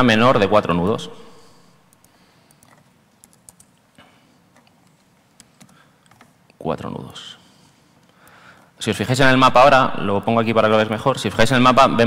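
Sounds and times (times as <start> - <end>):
laptop keyboard clicks: 1.9 - 3.8, 4.5 - 6.4.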